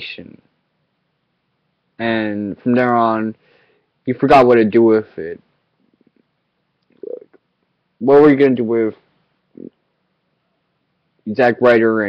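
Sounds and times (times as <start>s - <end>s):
short low vocal sound: 7.0s - 7.4s.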